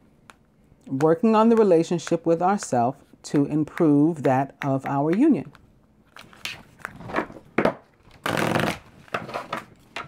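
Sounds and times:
cards being shuffled: 4.1s - 7.4s.

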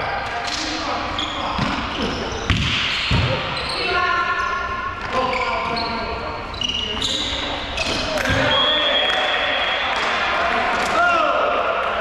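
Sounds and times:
sneakers squeaking on court floor: 0.0s - 9.0s
players' voices: 0.0s - 12.0s.

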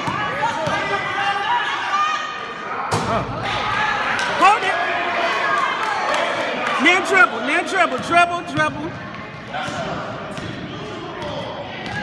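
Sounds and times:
spectators' voices echoing: 0.0s - 12.0s.

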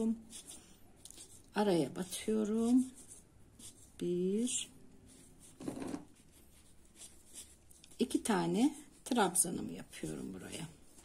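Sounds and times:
rustle of crochet work: 0.0s - 11.0s.

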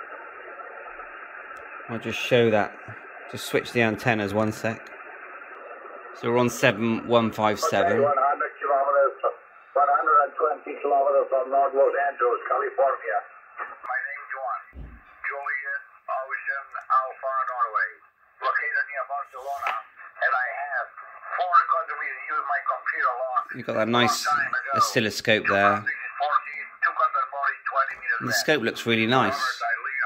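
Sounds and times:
person talking over radio speaker: 1.9s - 4.9s, 5.5s - 30.0s
low knock: 14.8s - 15.1s.

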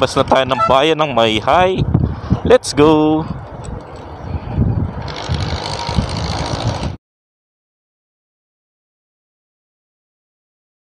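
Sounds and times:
road noise: 0.0s - 7.0s.

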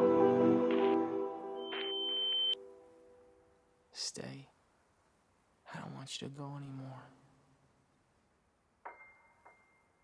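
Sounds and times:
held orchestral chord: 0.0s - 1.6s
high-pitched beep tone: 1.6s - 2.6s.

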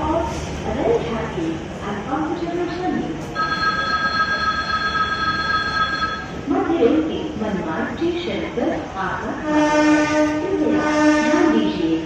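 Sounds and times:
train horn long note: 9.4s - 11.6s.

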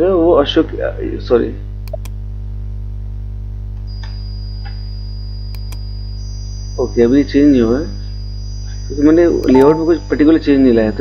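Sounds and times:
electrical mains hum: 0.0s - 11.0s
sharp click: 1.8s - 2.2s, 5.5s - 5.9s.

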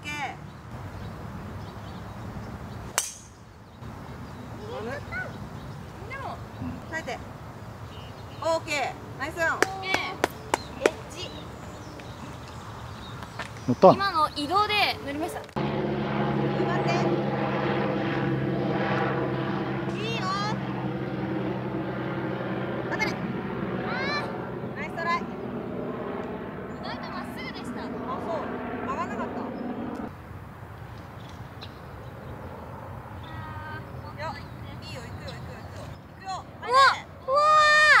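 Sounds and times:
golf club striking ball: 3.0s - 3.4s
low engine drone: 15.5s - 30.1s.

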